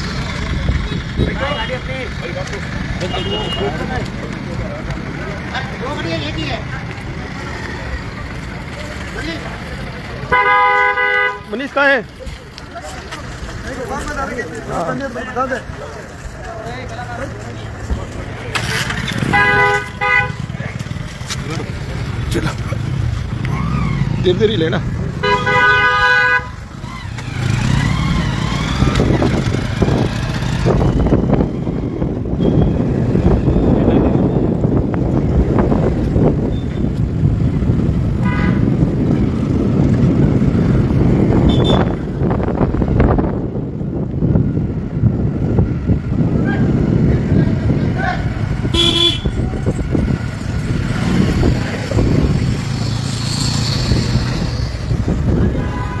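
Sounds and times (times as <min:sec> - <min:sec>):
vehicle horn toots: 0:03.0 - 0:03.8, 0:10.3 - 0:11.5, 0:19.2 - 0:20.4, 0:25.2 - 0:26.6, 0:38.2 - 0:38.7, 0:41.4 - 0:42.0, 0:48.7 - 0:49.4, 0:55.4 - 0:56.0
motor scooter engine: 0:16.7 - 0:42.8.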